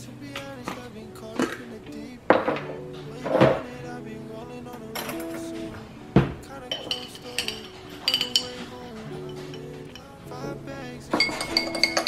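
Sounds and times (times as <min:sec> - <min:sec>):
background music: 0:00.0 - 0:12.0
metal spoon clinking glass jar: 0:06.7 - 0:10.1, 0:11.1 - 0:12.0.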